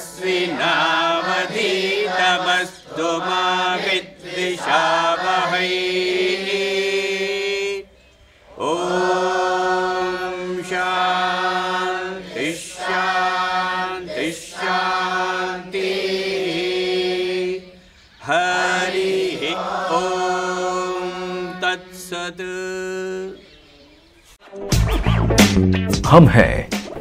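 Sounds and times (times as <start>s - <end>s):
melodic chanting: 0.0s - 24.2s.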